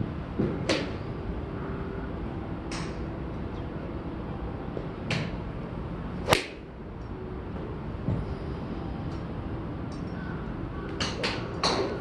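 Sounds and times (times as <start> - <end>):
golf club striking ball: 6.3 - 6.6.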